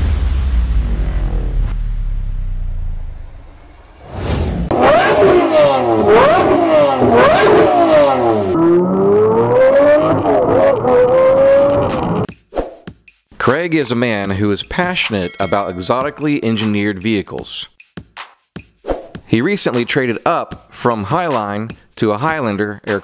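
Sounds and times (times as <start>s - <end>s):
deep low boom: 0.0s - 4.8s
car engine revving: 0.0s - 12.3s.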